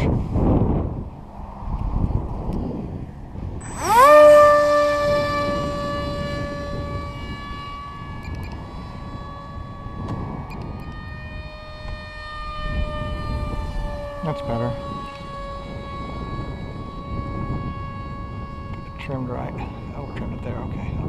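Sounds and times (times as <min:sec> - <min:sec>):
electric motor and propeller whine: 0:00.0 - 0:21.0
low wind rumble: 0:00.0 - 0:21.0.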